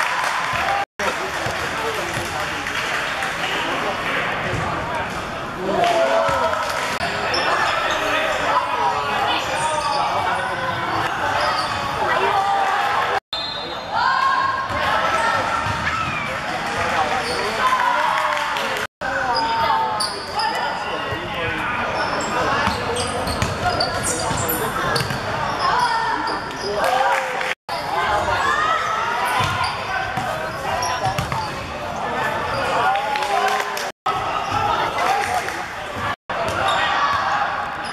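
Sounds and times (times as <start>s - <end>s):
players and spectators shouting: 5.6s - 24.6s, 25.4s - 31.4s, 32.0s - 37.9s
basketball bouncing on wooden court: 23.4s - 23.6s, 29.4s - 29.6s, 31.0s - 31.5s
ball bouncing on court: 25.0s - 25.2s, 29.4s - 30.4s, 31.0s - 31.6s.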